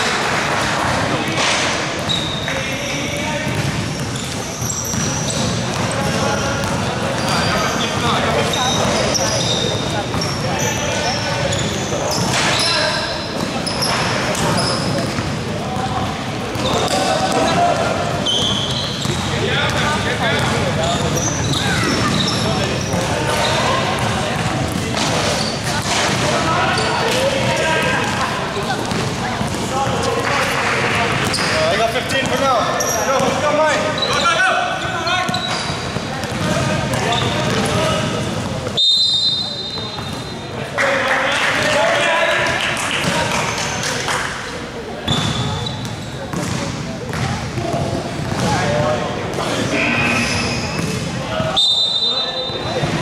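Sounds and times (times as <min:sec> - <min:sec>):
players calling out: 0:00.7 - 0:43.9, 0:44.6 - 0:53.0
sneaker squeaks: 0:00.8 - 0:40.6, 0:44.7 - 0:53.0
basketball bouncing on court: 0:03.2 - 0:10.5, 0:13.3 - 0:30.1, 0:35.2 - 0:38.8, 0:39.8 - 0:40.3, 0:45.1 - 0:49.5, 0:50.7 - 0:51.6.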